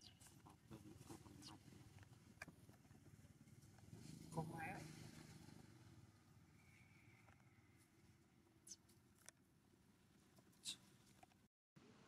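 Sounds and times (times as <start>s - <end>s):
faint clicks and rustles: 0.0s - 4.4s, 6.7s - 11.5s.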